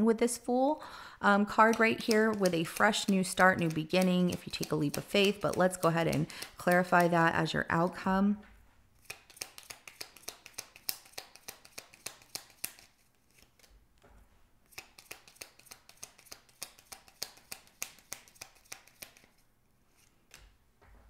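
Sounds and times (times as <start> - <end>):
cards being shuffled: 1.6 - 7.8, 9.0 - 20.6.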